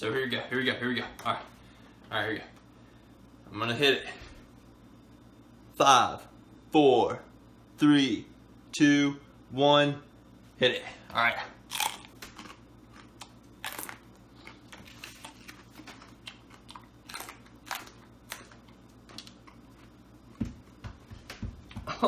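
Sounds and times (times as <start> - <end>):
person chewing crunchy peppers: 11.6 - 20.4.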